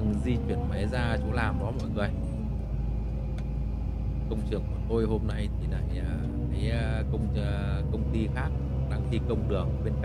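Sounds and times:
excavator diesel engine rumble: 0:00.0 - 0:10.0.

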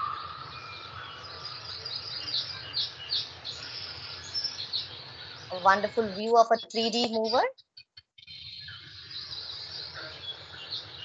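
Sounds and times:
birds chirping: 0:00.0 - 0:07.5, 0:08.2 - 0:11.0.

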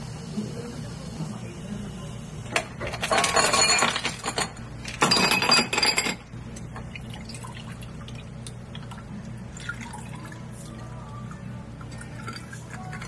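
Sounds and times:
wine pouring over ice: 0:07.0 - 0:11.0, 0:11.8 - 0:13.0.

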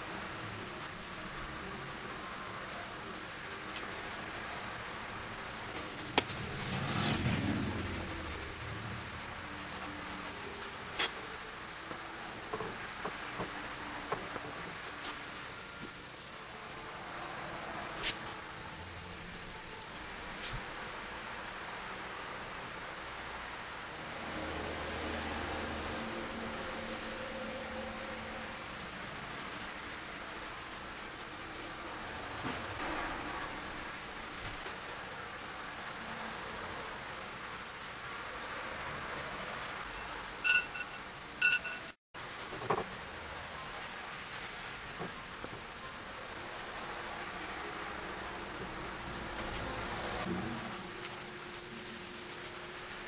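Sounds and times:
steady hiss: 0:00.0 - 0:53.0.

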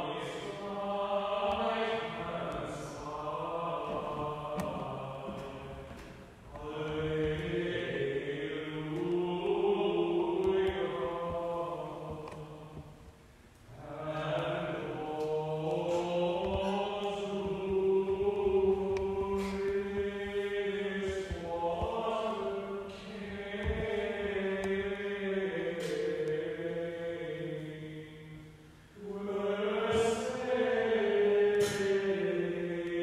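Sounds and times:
liturgical chant: 0:00.0 - 0:33.0.

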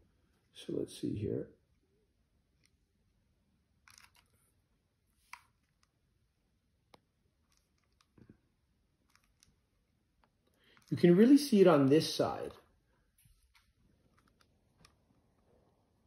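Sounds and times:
faint clicks and taps of handling: 0:06.8 - 0:11.0, 0:12.5 - 0:15.6.

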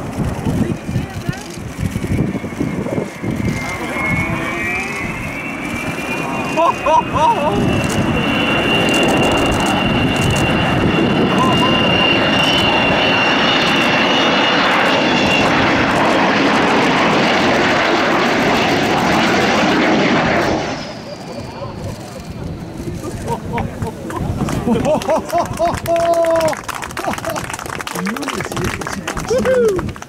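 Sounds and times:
jet aircraft roaring: 0:00.0 - 0:30.0
high whistling tone: 0:07.8 - 0:13.6.

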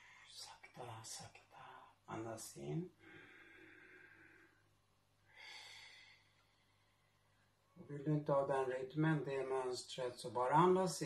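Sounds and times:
man breathing slowly: 0:03.0 - 0:07.4.

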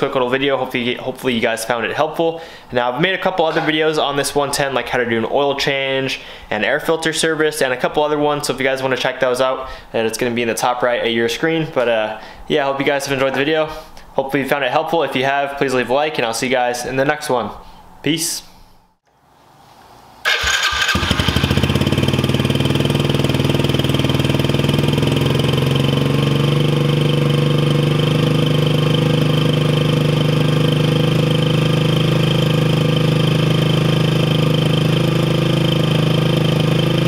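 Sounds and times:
motorcycle engine starting and idling: 0:20.2 - 0:37.0.

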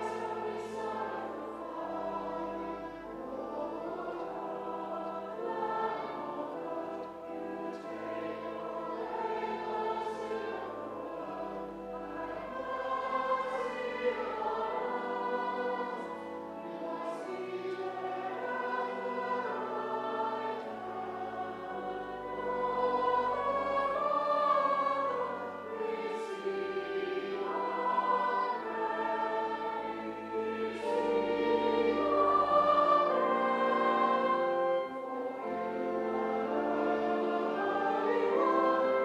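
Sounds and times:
congregation and choir singing hymn: 0:00.0 - 0:39.0.

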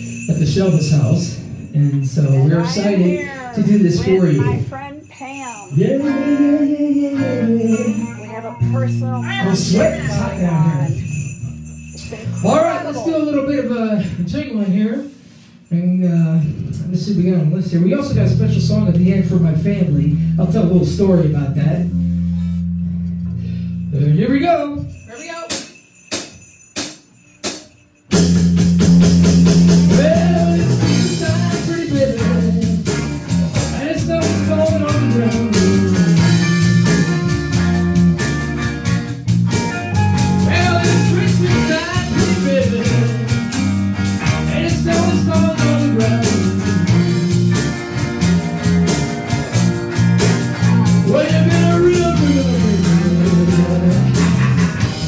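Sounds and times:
live rock band playing: 0:02.2 - 0:05.1, 0:05.8 - 0:13.8, 0:25.5 - 0:55.0
person singing into a microphone: 0:05.8 - 0:08.7, 0:29.9 - 0:32.9, 0:33.8 - 0:36.5, 0:40.4 - 0:43.4, 0:51.1 - 0:54.4.

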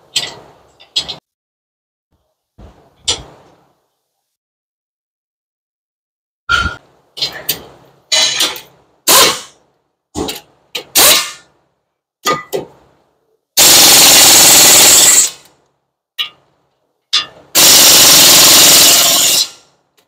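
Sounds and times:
impact wrench bursts: 0:09.1 - 0:09.6, 0:10.9 - 0:11.5, 0:13.6 - 0:15.5, 0:17.5 - 0:19.7.

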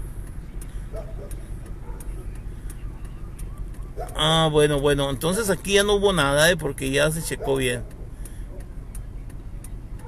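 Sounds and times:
car engine running at low revs: 0:00.0 - 0:10.0
faint light ticking: 0:00.0 - 0:10.0.

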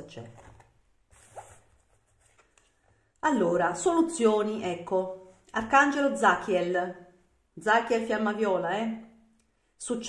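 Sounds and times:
card sliding across cloth: 0:01.1 - 0:02.7.

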